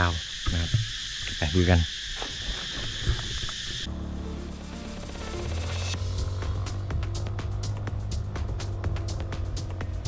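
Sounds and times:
high-pitched insect chorus: 0.0 - 10.0
music: 3.9 - 10.0.

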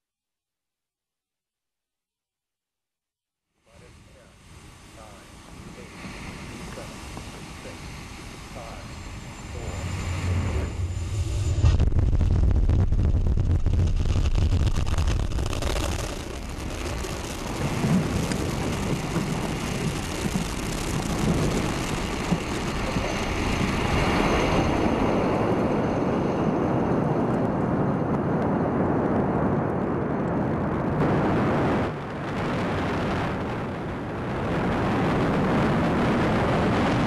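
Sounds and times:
rocket engines rumbling: 3.7 - 37.0.

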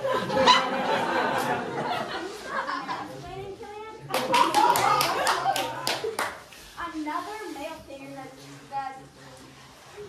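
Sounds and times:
hand clapping: 4.1 - 6.5.

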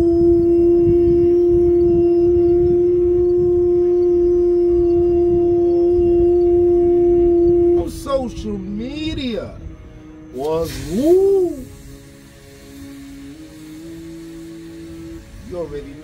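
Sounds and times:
low rumble: 0.0 - 16.0.

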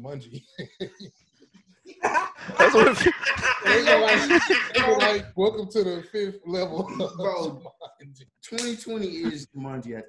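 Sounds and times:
woman laughing loudly: 2.0 - 5.2, 6.7 - 7.6.

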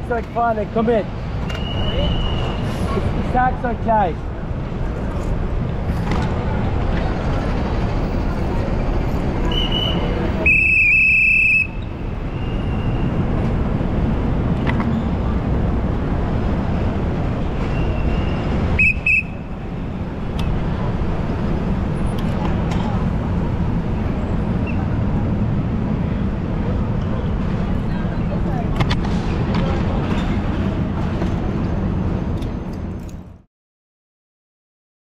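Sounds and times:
street traffic rumble: 0.0 - 33.5
shrill whistle blasts: 1.6 - 2.6, 9.5 - 13.0, 17.7 - 19.4.

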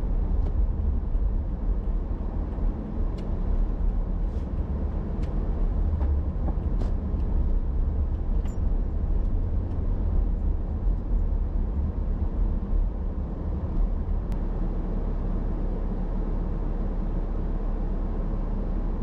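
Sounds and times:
car engine and road rumble: 0.0 - 19.0
faint light ticks: 2.5 - 3.3, 4.4 - 5.4, 9.2 - 9.9.

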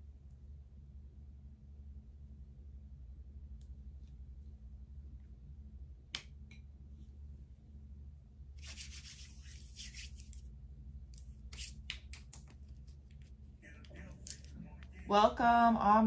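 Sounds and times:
low steady hum: 0.0 - 16.0
cards shuffled by hand: 8.6 - 15.0.

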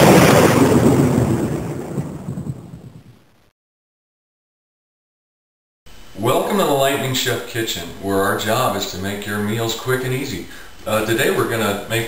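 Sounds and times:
thunder rumbling: 0.0 - 3.4.

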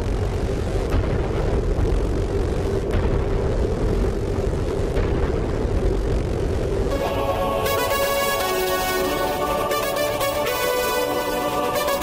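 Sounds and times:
held hum: 0.0 - 12.0
low droning rumble: 0.0 - 12.0.

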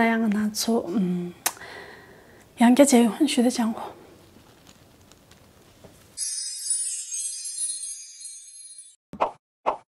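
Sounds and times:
high shimmering tail: 6.2 - 9.0.

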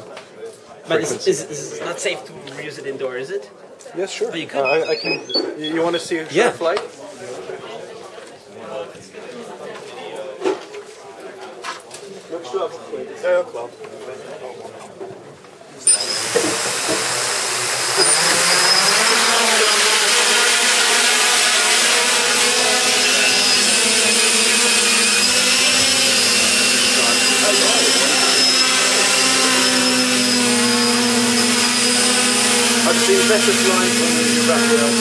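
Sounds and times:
drone propellers buzzing whine: 16.0 - 35.0.

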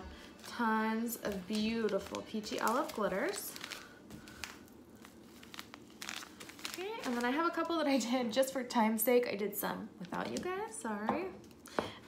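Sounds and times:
plastic bags crinkling: 0.0 - 8.8.

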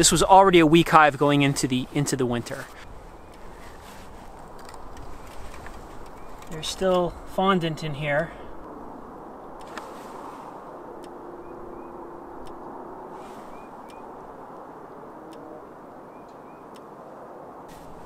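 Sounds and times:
outdoor background noise: 0.0 - 18.0
faint chirps and ticks: 2.7 - 3.8, 4.5 - 7.3, 10.9 - 12.8, 13.5 - 17.0.

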